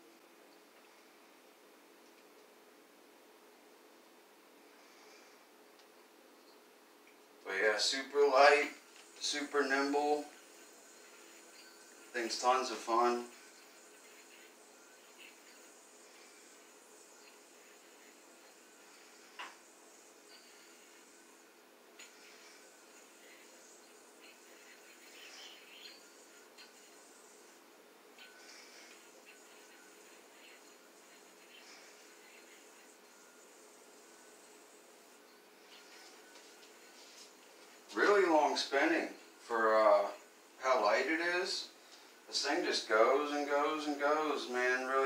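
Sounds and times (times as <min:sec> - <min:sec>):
faint room hum: 0:00.0 - 0:45.0.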